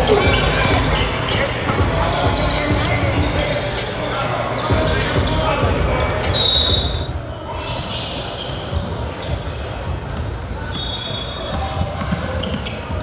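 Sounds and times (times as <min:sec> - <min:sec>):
music: 0:00.0 - 0:07.1
voices: 0:00.0 - 0:13.0.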